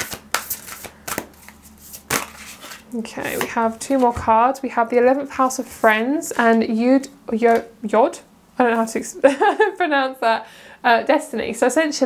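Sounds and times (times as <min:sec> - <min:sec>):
cards being shuffled: 0:00.0 - 0:04.2.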